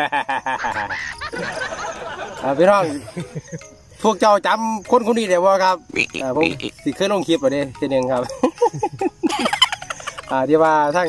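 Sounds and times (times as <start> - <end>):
man laughing heartily: 0.0 - 3.8, 6.0 - 6.8, 8.2 - 10.3.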